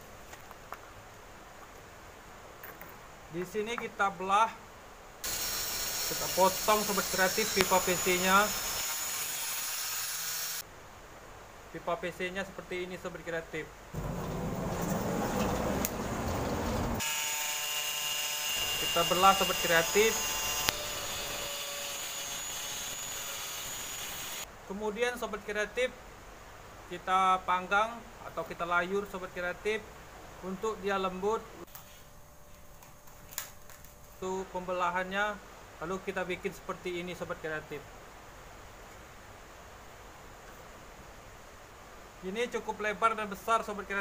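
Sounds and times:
angle grinder whining: 0:05.3 - 0:10.6, 0:15.6 - 0:24.4.

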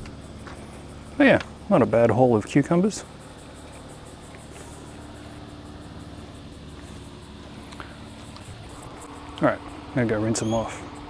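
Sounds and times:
faint high-pitched pulsing: 0:00.0 - 0:11.0
low hum and rumble: 0:00.0 - 0:11.0
thin steady drone: 0:00.0 - 0:11.0.

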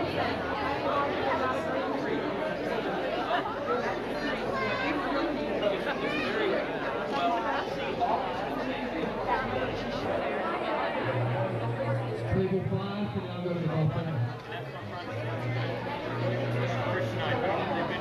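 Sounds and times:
hubbub of overlapping conversation: 0:00.0 - 0:18.0.

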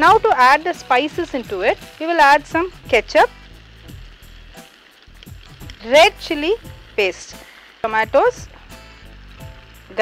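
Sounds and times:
food sizzling in a frying pan: 0:00.0 - 0:10.0.

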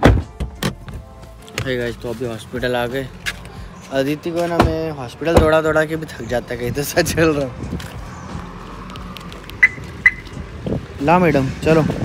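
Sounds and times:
car lock chirp beeps: 0:09.6 - 0:10.3.

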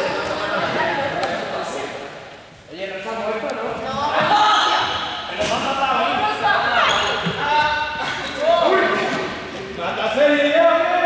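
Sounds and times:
young people calling out: 0:03.8 - 0:09.3.

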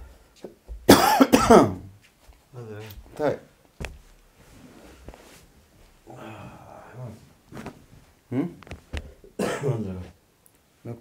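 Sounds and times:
man coughing loudly: 0:00.9 - 0:01.9, 0:09.4 - 0:10.0.

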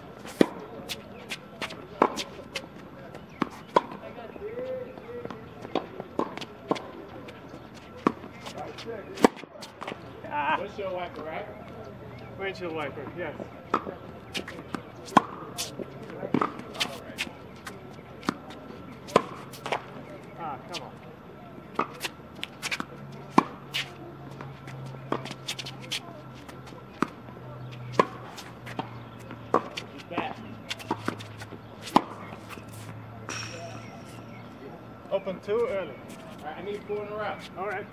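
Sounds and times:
tennis ball bouncing: 0:00.2 - 0:04.0, 0:05.2 - 0:10.1, 0:13.7 - 0:20.9, 0:21.6 - 0:34.6
racket striking tennis ball: 0:19.0 - 0:19.9, 0:27.9 - 0:34.5.

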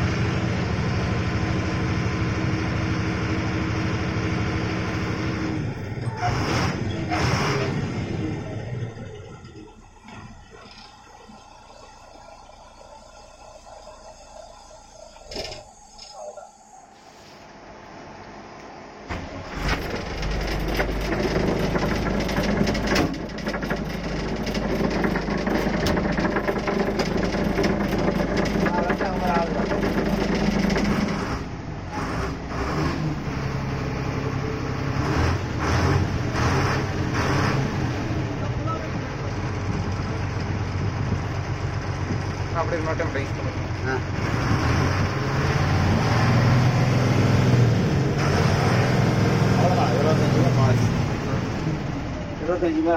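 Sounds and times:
bus diesel engine rumbling: 0:00.0 - 0:52.9.

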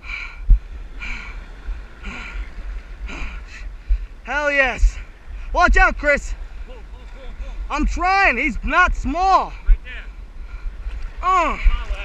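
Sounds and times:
wind and water rumble: 0:00.0 - 0:12.0.

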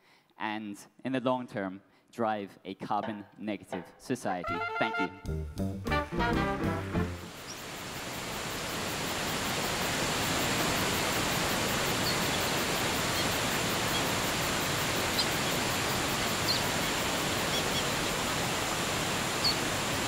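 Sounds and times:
waterfall rushing: 0:07.1 - 0:20.0
faint high bird chirps: 0:07.4 - 0:07.7, 0:11.9 - 0:14.1, 0:15.0 - 0:15.6, 0:16.2 - 0:18.2, 0:19.4 - 0:19.6.

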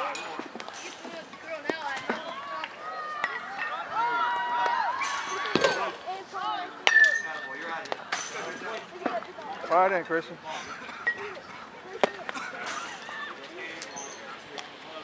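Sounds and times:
voices chattering: 0:00.0 - 0:15.0
balls being hit: 0:04.6 - 0:06.0.

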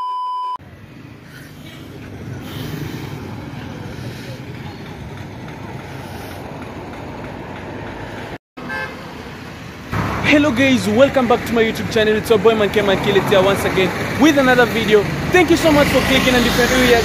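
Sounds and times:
passing vehicles rumbling: 0:00.6 - 0:17.0.

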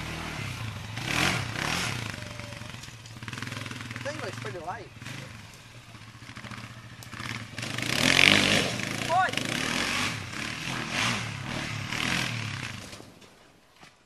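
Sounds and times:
quad engine revving: 0:00.0 - 0:13.1.

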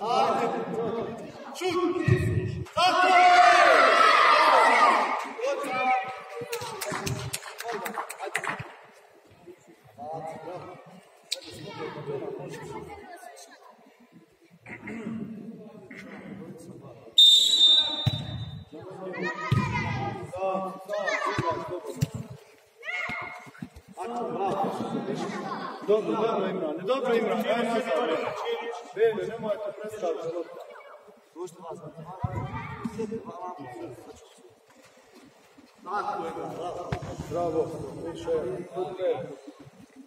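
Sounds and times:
spectators shouting and cheering: 0:02.8 - 0:06.5
sharp claps in a hall: 0:06.2 - 0:08.7.

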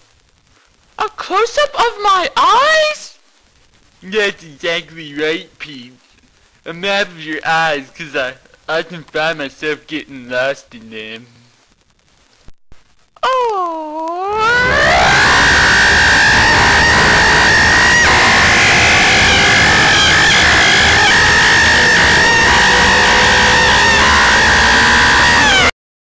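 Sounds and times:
distorted loud yell: 0:14.2 - 0:25.8.

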